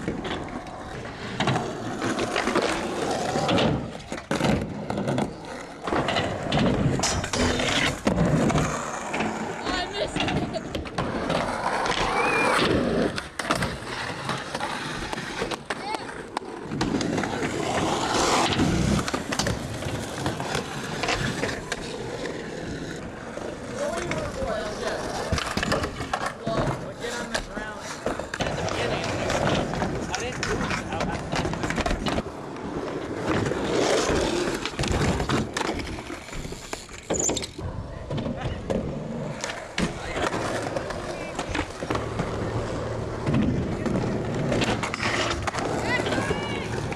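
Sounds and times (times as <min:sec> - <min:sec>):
skateboard clacking on ground: 0:00.0 - 0:46.9
skateboard wheels rolling on concrete: 0:00.0 - 0:46.9.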